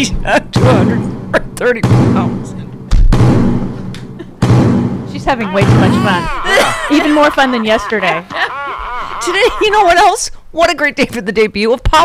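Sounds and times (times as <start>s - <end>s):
heavy thuds with low boom: 0.6s - 5.9s.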